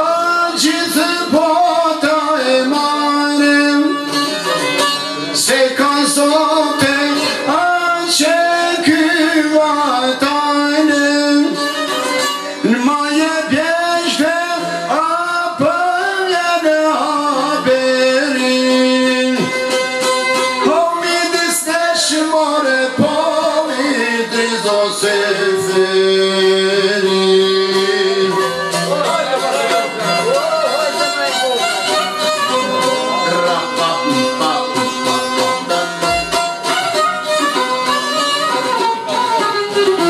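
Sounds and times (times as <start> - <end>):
man singing: 0.0 - 19.8, 20.4 - 29.4, 32.7 - 36.4
plucked long-necked lutes: 0.0 - 40.0.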